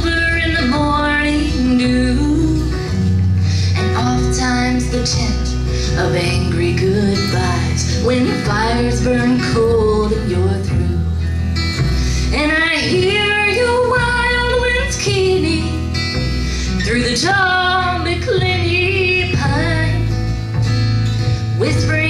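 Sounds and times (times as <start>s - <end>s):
plucked upright bass: 0.0s - 22.0s
strummed acoustic guitar: 0.0s - 22.0s
woman singing a folk ballad: 0.0s - 22.0s.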